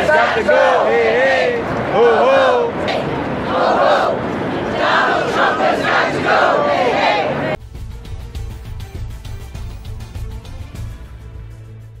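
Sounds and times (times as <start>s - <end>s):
crowd chanting and shouting: 0.0s - 7.6s.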